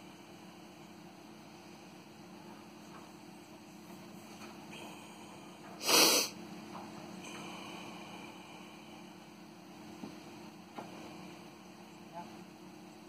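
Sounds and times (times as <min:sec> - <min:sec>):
steady low hum: 0:00.0 - 0:13.0
person sneezing: 0:05.8 - 0:06.3.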